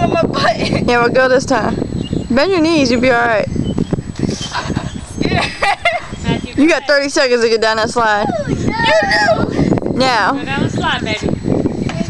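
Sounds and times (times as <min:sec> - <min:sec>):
people laughing: 0:04.3 - 0:06.2.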